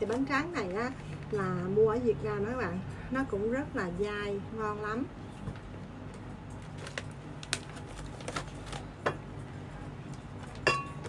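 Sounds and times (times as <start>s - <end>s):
plastic packaging crinkling: 6.5s - 9.0s.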